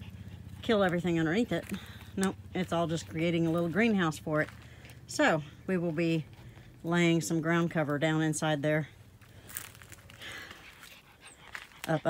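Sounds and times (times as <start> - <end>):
light footsteps: 9.1 - 12.0.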